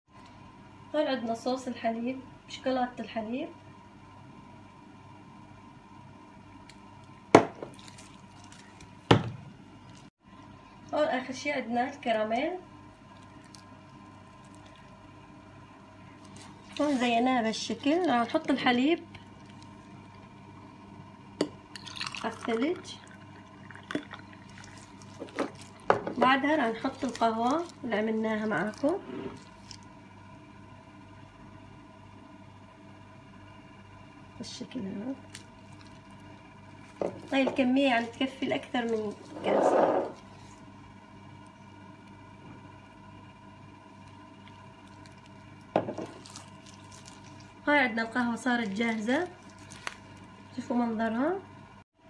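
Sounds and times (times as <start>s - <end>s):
background hum with faint tones: 0.1s - 52.0s
glass container clunking on countertop: 45.8s - 46.1s.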